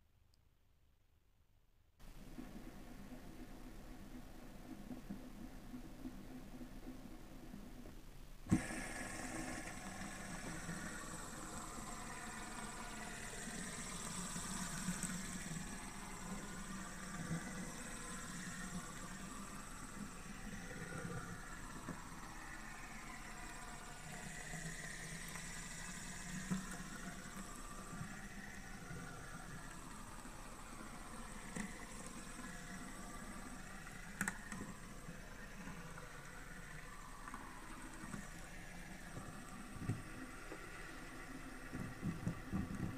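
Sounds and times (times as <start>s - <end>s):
fidget spinner whirring: 7.8s - 42.9s.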